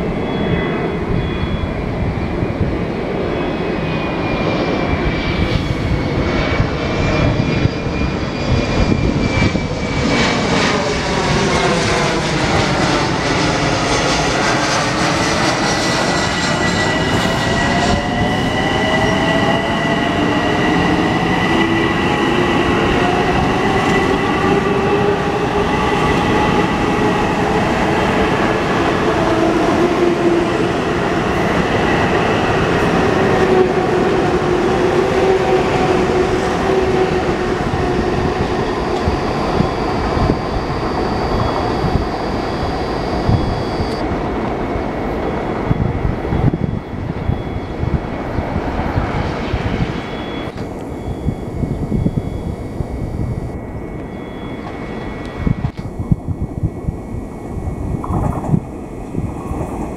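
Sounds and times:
train wheels rumbling on rails: 0:57.8 - 0:59.9.

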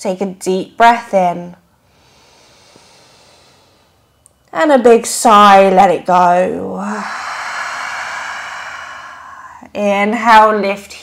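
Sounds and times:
woman inhaling deeply: 0:01.8 - 0:04.1, 0:06.8 - 0:09.7.

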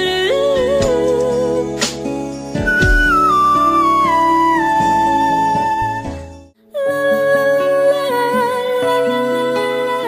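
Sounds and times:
soft backing music: 0:00.0 - 0:10.0.

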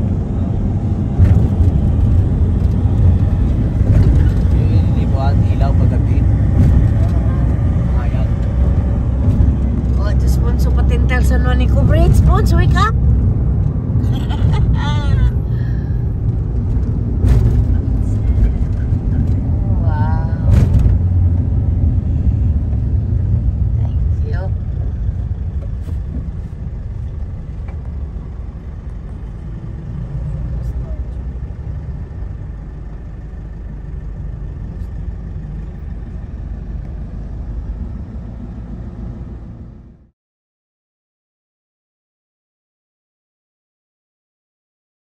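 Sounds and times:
road and engine rumble in van: 0:00.0 - 0:40.2.

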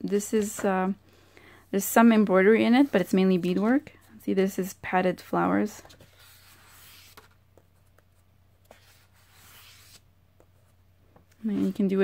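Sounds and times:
fingers sliding over book pages: 0:05.9 - 0:07.4, 0:08.6 - 0:10.0.

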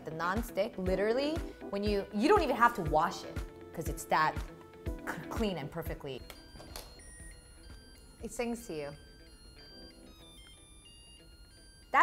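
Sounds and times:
rice cooker beeping melody: 0:06.0 - 0:12.0.

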